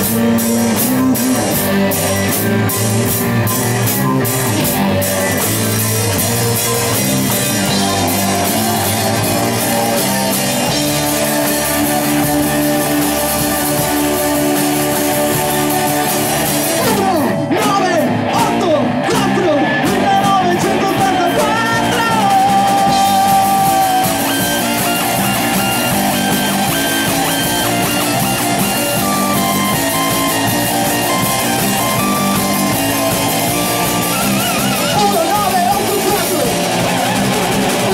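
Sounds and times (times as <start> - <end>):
lead guitar sliding in pitch: 0.0 - 37.9
rock band playing live: 0.0 - 37.9.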